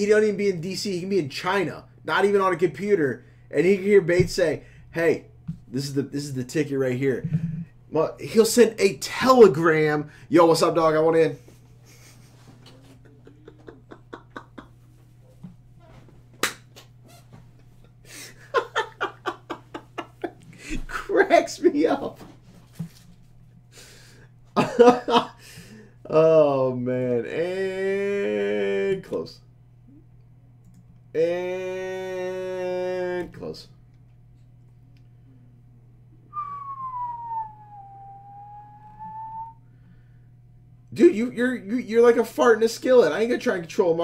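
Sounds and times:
low electrical hum: 0.0 - 44.0
breath noise: 7.2 - 7.8
person whistling sliding note: 36.3 - 39.6.

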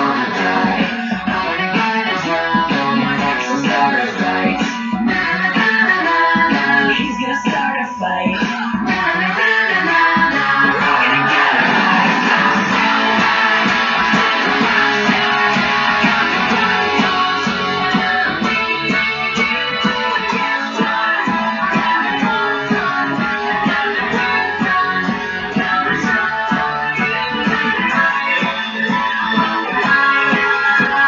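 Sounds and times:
rock band track: 0.0 - 31.0
electric guitar playing: 8.8 - 31.0
steady drum beat: 10.2 - 31.0.

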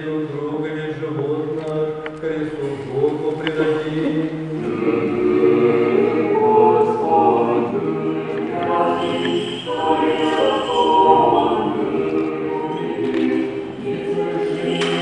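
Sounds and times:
choir chanting a cappella: 2.2 - 15.0.

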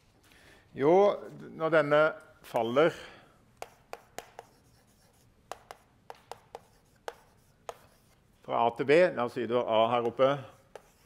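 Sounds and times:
chalk tapping on blackboard: 3.6 - 8.2, 9.9 - 11.0.

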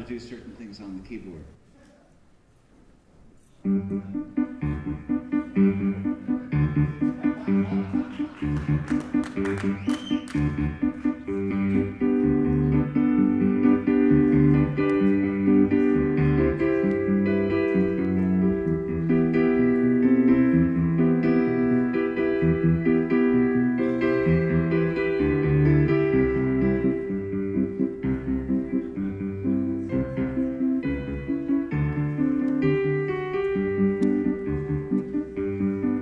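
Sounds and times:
piano keyboard chords: 3.6 - 36.0.

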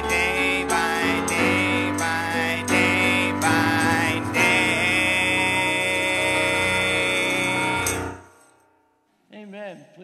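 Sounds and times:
piano hymn chord: 0.0 - 8.2.

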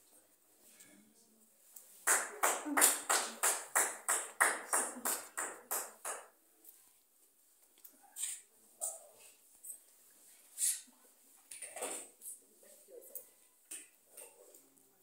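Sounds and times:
hand clapping: 2.0 - 6.4.

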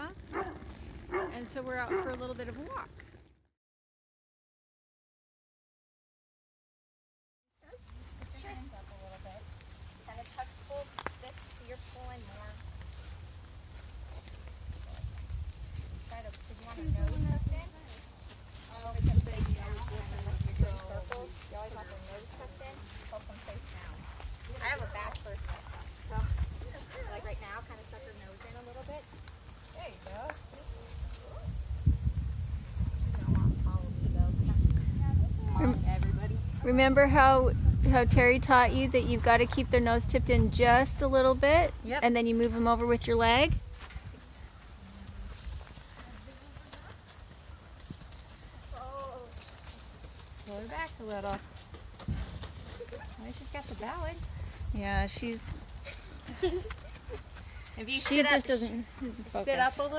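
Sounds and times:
horse hoofbeats on grass and dirt: 0.0 - 3.3, 7.7 - 59.9
steady high hiss: 7.6 - 34.6, 36.7 - 59.9
microphone rumbles: 14.0 - 17.7, 18.7 - 21.7, 23.8 - 27.4, 30.4 - 44.2, 51.8 - 57.1
quiet indistinct talking: 16.0 - 31.6.

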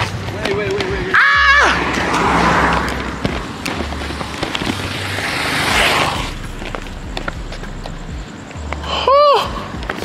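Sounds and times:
motorcycle engine humming: 0.0 - 10.0.

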